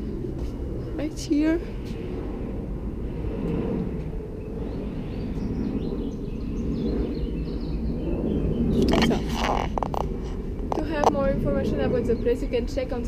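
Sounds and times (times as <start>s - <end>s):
distant traffic rumble: 0.0s - 13.0s.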